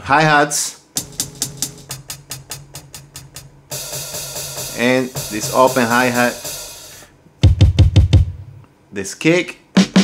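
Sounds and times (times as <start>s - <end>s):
hi-hat taps: 1.0s - 8.2s.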